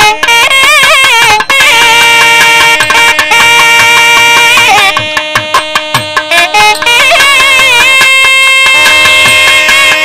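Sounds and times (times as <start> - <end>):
drum strokes: 0.0 - 10.0
melody holding long notes: 0.0 - 10.0.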